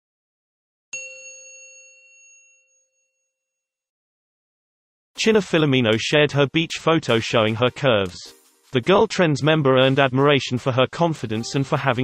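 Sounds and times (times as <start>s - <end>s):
bright bell-like chime: 0.9s - 3.7s.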